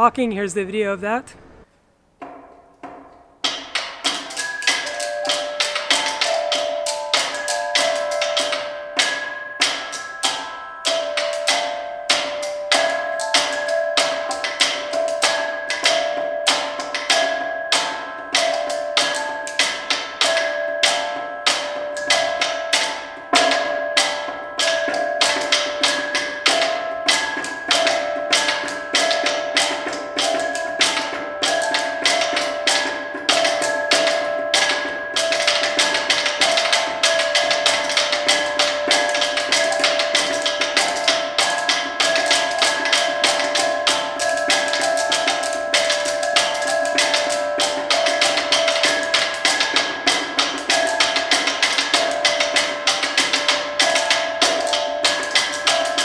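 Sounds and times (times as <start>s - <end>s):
robots tapping rhythms: 2.2s - 56.0s
ringing tones: 3.8s - 56.0s.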